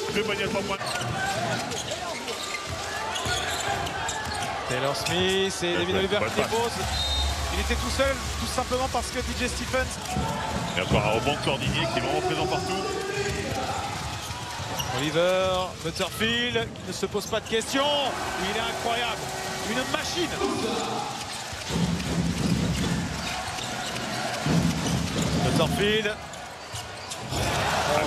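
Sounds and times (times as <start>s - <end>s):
arena crowd murmur: 0.0s - 16.2s, 17.7s - 28.0s
basketball bouncing on hardwood: 10.0s - 11.9s, 21.6s - 25.8s.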